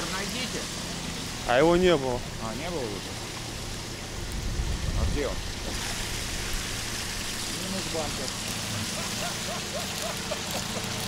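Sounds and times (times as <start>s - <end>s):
rain hissing: 0.0s - 11.0s
running water: 0.0s - 11.0s
vehicle engine idling: 0.0s - 11.0s.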